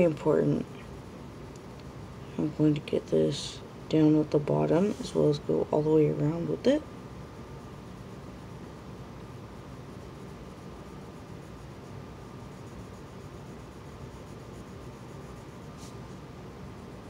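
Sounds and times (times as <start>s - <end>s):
room hiss: 0.0s - 17.0s
pencil scratching on paper: 9.6s - 16.2s.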